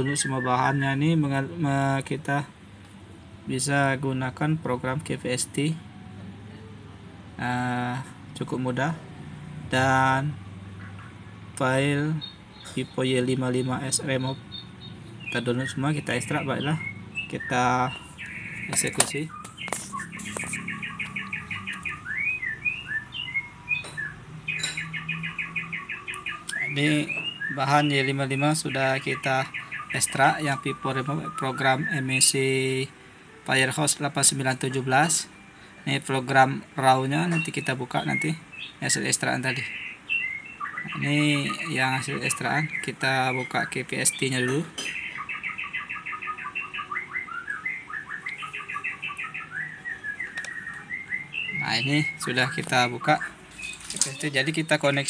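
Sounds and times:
small bird chirping and whistling: 0.0 - 2.0, 12.0 - 32.8, 37.1 - 55.0.

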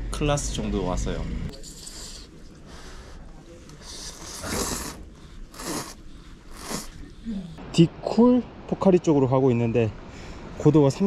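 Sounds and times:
person slurping noodles: 3.8 - 7.5.

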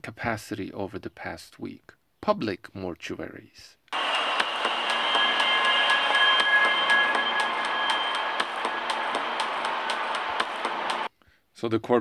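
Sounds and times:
high sustained tones: 4.0 - 11.1.

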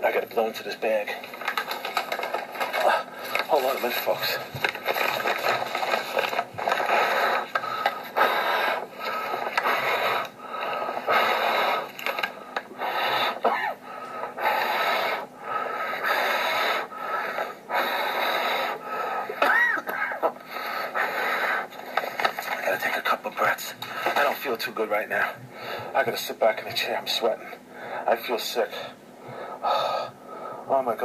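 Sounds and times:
man breathing into paper bag: 1.2 - 22.6, 23.7 - 24.3, 25.4 - 26.0, 29.2 - 30.7.

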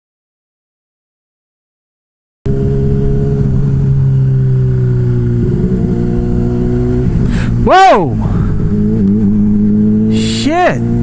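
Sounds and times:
motorcycle engine cruising: 2.5 - 11.0.

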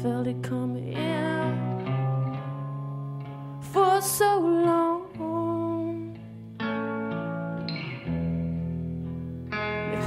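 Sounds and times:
plucked guitar: 0.0 - 10.0.

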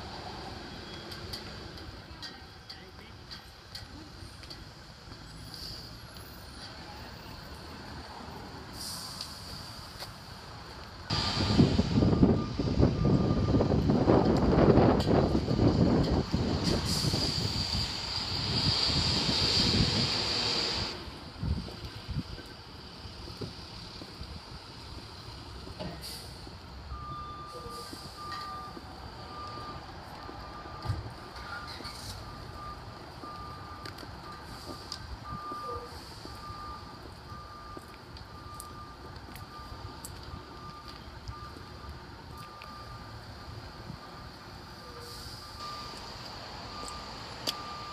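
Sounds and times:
vehicle reversing beeps: 0.3 - 1.8, 11.1 - 17.5, 25.6 - 47.9.

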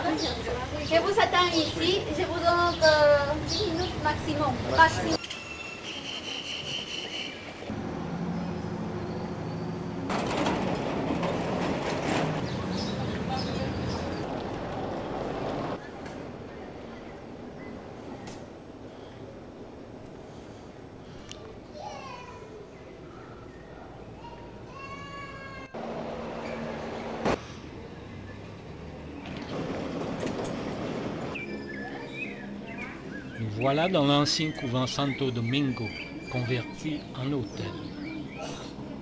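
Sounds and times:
vehicle engine humming: 7.5 - 16.4, 25.7 - 39.0.

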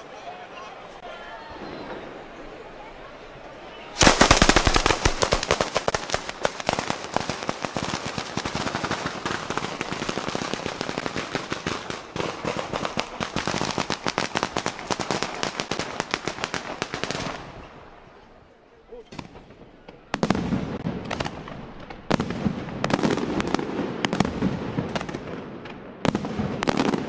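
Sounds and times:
rapid firecracker bangs: 4.0 - 17.5, 19.1 - 27.0.

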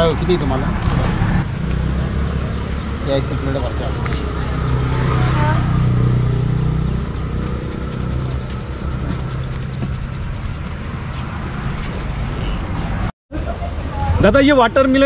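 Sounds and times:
vehicle engine humming: 0.0 - 13.0
road traffic noise: 0.0 - 14.1.

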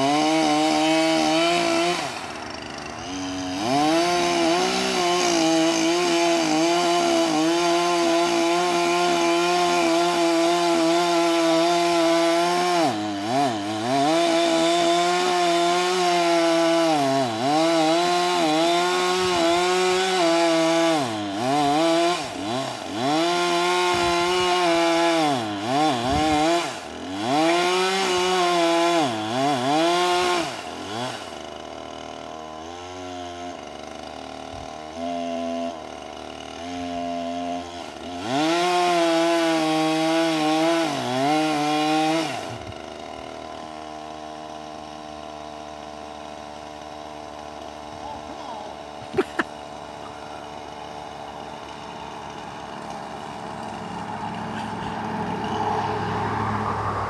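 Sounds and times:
chainsaw cutting wood: 0.0 - 57.0.

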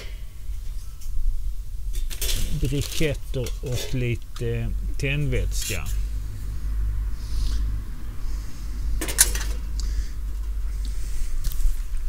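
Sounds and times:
steady low rumble: 0.0 - 12.0
metal grill parts clinking: 1.9 - 4.5, 5.5 - 6.0.

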